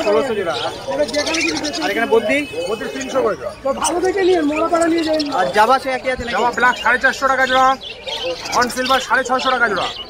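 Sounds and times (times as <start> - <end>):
parrots chirping: 0.0 - 10.0
people talking: 0.0 - 10.0.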